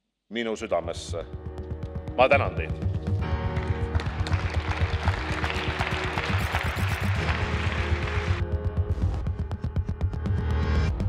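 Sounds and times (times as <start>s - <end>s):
music with low beat: 0.8s - 11.0s
audience applauding: 3.2s - 8.6s.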